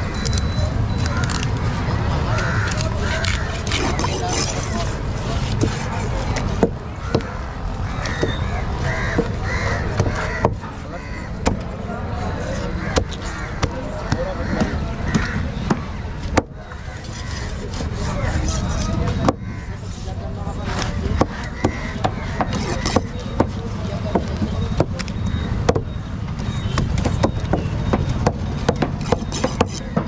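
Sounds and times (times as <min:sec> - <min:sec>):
knife knocking on wooden block: 0:26.8 - 0:30.0.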